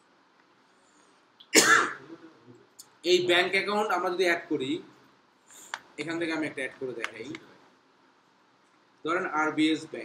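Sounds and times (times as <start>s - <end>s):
person coughing: 1.5s - 2.3s.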